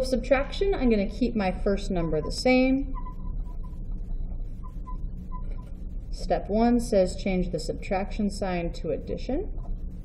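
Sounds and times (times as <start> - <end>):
steady low hum: 0.0 - 10.0
marker squeaks: 2.9 - 3.8.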